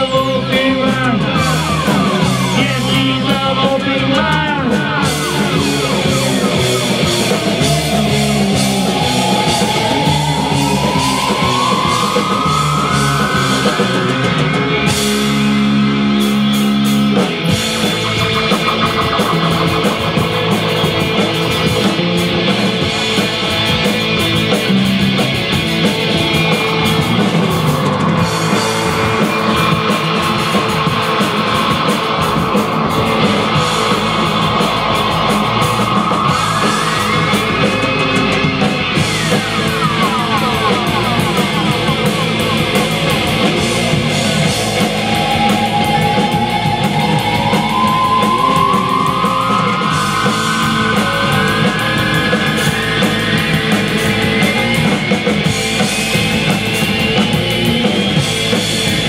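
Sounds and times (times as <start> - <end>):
bass guitar: 0.0 - 59.0
drum kit: 0.0 - 59.0
electric guitar lead: 0.0 - 59.0.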